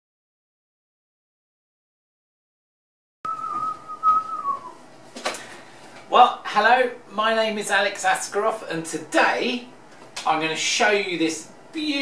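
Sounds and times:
whistled note sliding down: 3.3 - 4.8.

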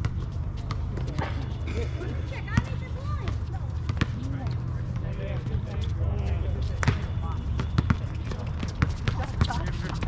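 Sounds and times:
basketball bouncing on court: 2.4 - 5.5, 6.7 - 10.0.

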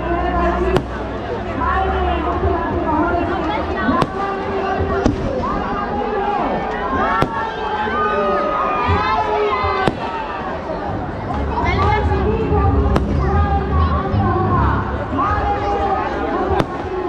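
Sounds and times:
crowd shouting and talking: 0.0 - 17.0
fireworks bursting: 0.7 - 1.1, 3.9 - 5.9, 7.0 - 7.8, 9.0 - 10.6, 12.7 - 13.7, 16.5 - 17.0.

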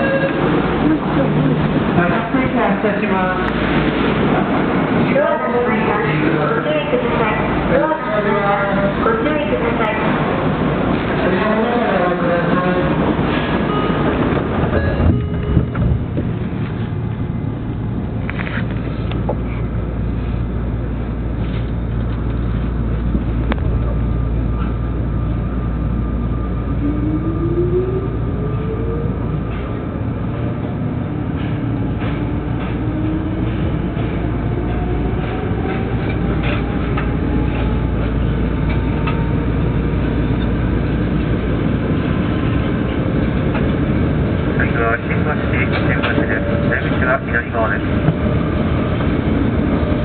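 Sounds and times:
subway train rumble: 0.0 - 50.0.

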